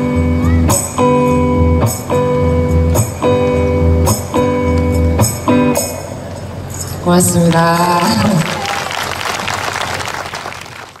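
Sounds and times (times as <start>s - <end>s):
audience applauding: 8.0s - 11.0s.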